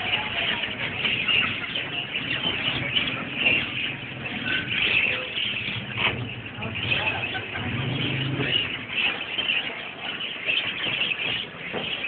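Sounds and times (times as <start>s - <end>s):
birds chirping: 0.0s - 12.0s.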